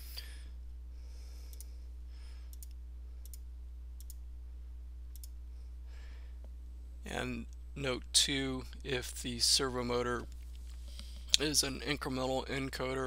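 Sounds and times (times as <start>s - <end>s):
low electrical hum: 0.0s - 13.0s
computer mouse clicking: 4.0s - 4.2s.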